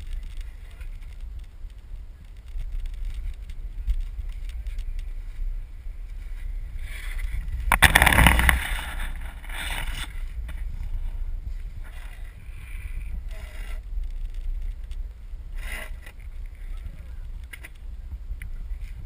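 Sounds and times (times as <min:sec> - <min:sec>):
longboard wheels rolling on asphalt: 0:00.0 - 0:19.0
wind rumble on microphone: 0:00.0 - 0:19.0
board rushing past: 0:07.7 - 0:10.2.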